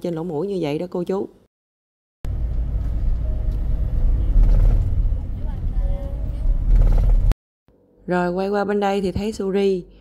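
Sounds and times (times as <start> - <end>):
van engine and road rumble: 2.3 - 7.4.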